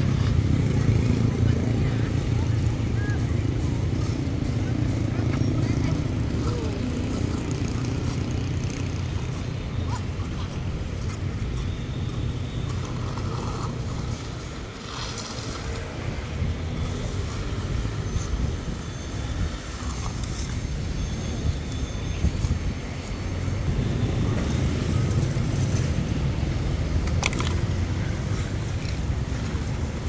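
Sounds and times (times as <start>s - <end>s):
outdoor background noise: 0.0s - 30.0s.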